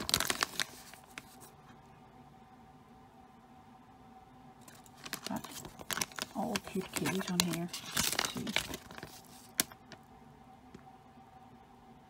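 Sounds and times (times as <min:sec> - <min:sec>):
plastic bag crinkling: 0:00.0 - 0:01.5, 0:04.6 - 0:10.0.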